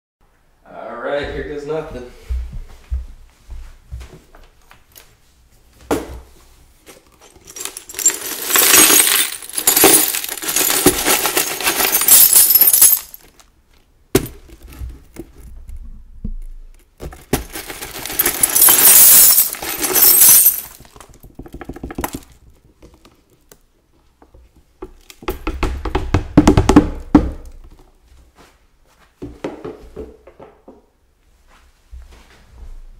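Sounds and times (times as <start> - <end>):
broken glass sliding and tinkling: 7.2 - 13.3, 17.5 - 20.9
glass clinks: 18.0 - 20.8.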